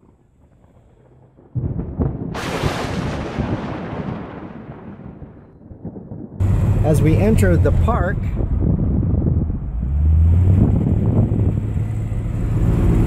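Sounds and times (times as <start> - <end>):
thunder rumble and crash: 0.0 - 13.0.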